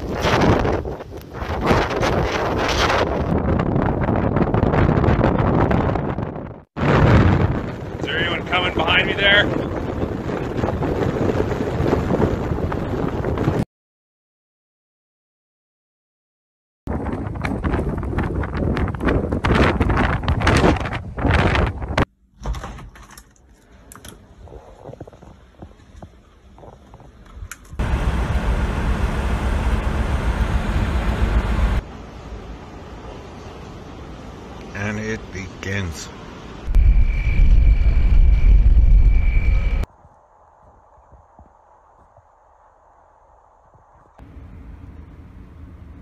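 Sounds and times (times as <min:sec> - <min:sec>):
strong wind gusting on microphone: 0:00.0 - 0:13.6, 0:16.9 - 0:22.1, 0:24.2 - 0:31.8, 0:36.6 - 0:44.2
high whistling wind tone: 0:36.2 - 0:44.2.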